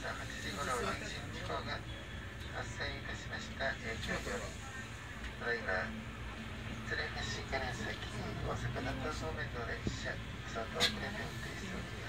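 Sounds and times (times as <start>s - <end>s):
train rumbling past: 0.0s - 12.0s.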